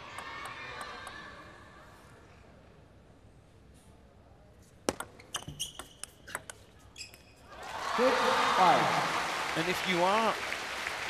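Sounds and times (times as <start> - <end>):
shoe squeaks: 5.0 - 7.5
crowd cheering and applause: 7.6 - 11.0.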